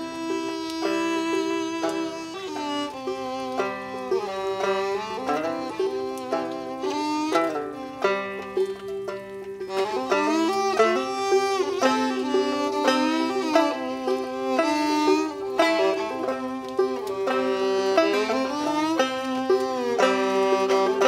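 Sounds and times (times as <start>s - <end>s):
banjo picking rhythm: 0.0s - 21.0s
fiddle melody: 0.0s - 21.0s.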